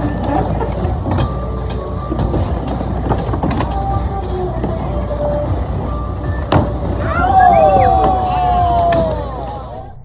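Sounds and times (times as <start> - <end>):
skateboard wheels rolling on wood: 0.0 - 9.7.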